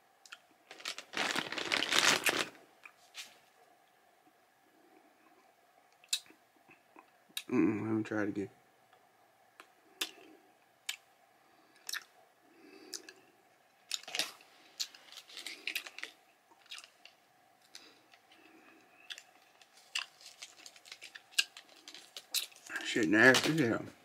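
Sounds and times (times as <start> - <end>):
person chewing candy: 11.8 - 12.1, 13.9 - 22.8.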